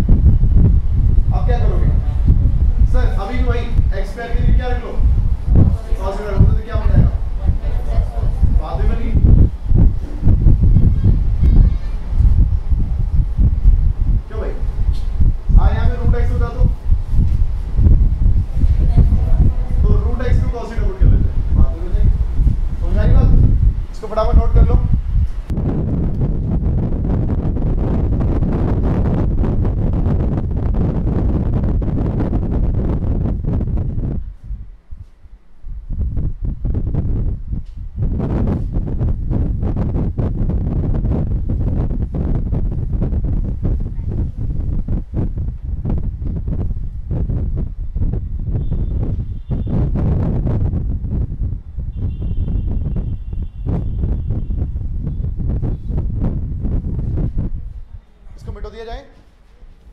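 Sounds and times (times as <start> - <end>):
rumbling rustling microphone noise: 0.0 - 59.9.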